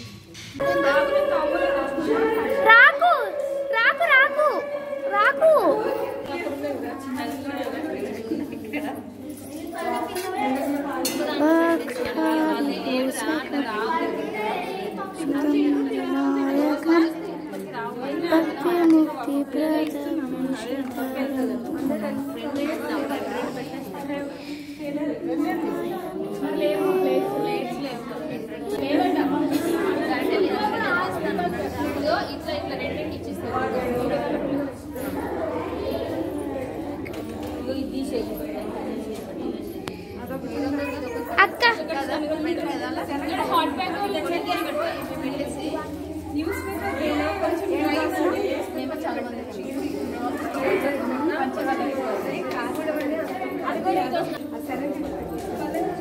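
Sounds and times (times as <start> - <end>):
overlapping chatter of voices: 0.0 - 56.0.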